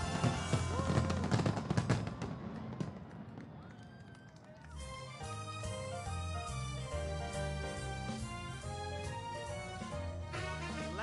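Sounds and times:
fireworks bursts: 0.0s - 4.1s
fireworks crackling: 0.0s - 11.0s
keyboard music: 4.9s - 11.0s.

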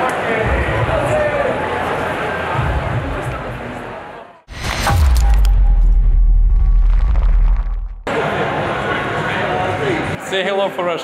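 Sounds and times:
people's voices in a large room: 0.0s - 4.5s, 8.1s - 11.0s
deep bass boom: 4.5s - 8.1s.

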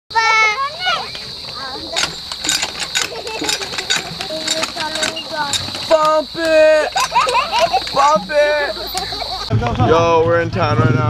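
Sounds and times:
children's voices: 0.1s - 9.6s
hand water pump clanking: 1.1s - 9.5s.

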